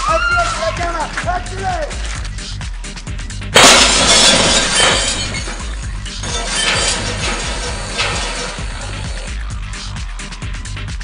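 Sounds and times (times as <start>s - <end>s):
background music beat: 0.0s - 4.0s, 7.7s - 11.0s
glass shattering: 3.6s - 9.3s.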